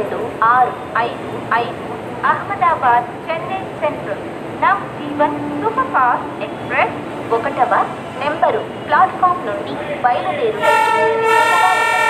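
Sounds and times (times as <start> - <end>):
public-address announcement: 0.0 - 12.0
train horn long steady note: 10.6 - 12.0.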